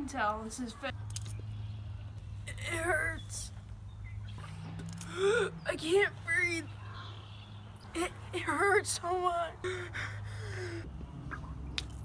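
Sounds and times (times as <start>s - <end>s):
woman moaning in pain: 5.1s - 5.6s.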